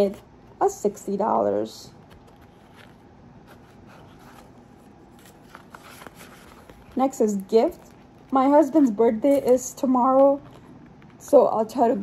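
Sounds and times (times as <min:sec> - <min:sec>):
banknotes rustling: 0:00.7 - 0:12.0.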